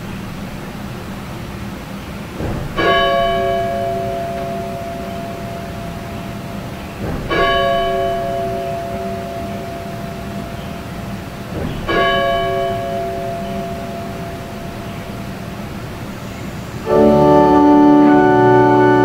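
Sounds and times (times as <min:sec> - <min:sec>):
church bell tolling: 0:02.4 - 0:16.2, 0:16.8 - 0:19.0.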